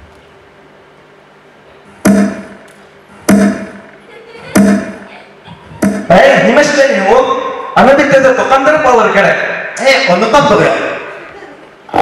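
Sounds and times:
loud thuds with ringing: 2.0s - 2.6s, 3.3s - 5.0s, 5.7s - 6.2s.

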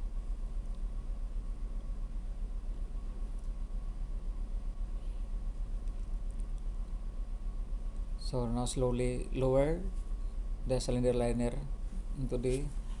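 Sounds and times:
pulsing low machinery hum: 0.0s - 13.0s.

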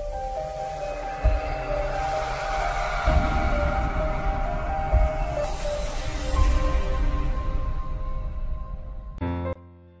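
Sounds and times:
rising whoosh: 0.1s - 7.5s.

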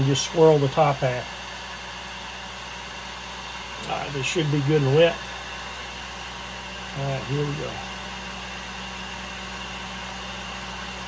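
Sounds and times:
blower motor whirring: 0.0s - 11.0s.

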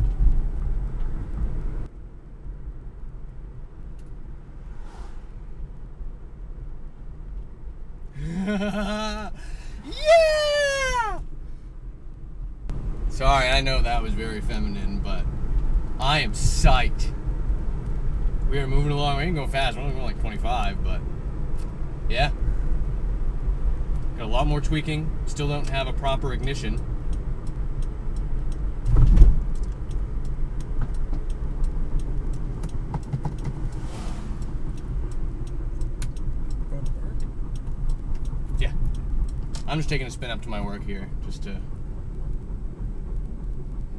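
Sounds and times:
road and tyre rumble: 0.0s - 43.9s
man squealing with joy: 8.2s - 11.2s
light rattles and clicks: 23.9s - 43.9s.

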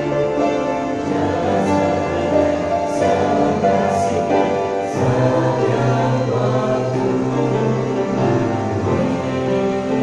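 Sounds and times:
group singing in harmony: 0.0s - 10.0s.

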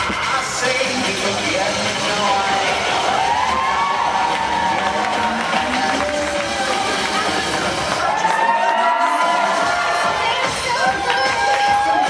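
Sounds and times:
crowd cheering and shouting: 0.0s - 12.0s
music in a large hall: 0.0s - 12.0s.

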